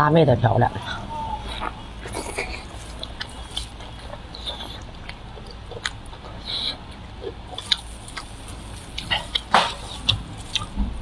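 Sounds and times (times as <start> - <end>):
wet chewing: 0.8 - 11.0
soft mouth clicks and smacks: 1.4 - 10.8.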